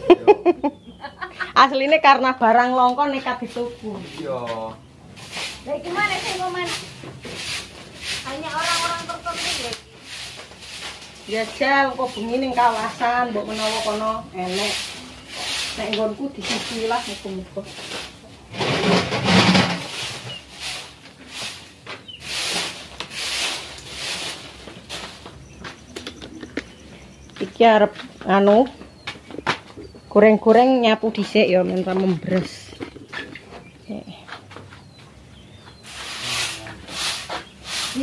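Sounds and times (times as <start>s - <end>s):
broom sweeping earthen floor: 2.8s - 25.9s, 35.7s - 38.0s
rough scraping strokes: 3.4s - 25.3s, 35.8s - 38.0s.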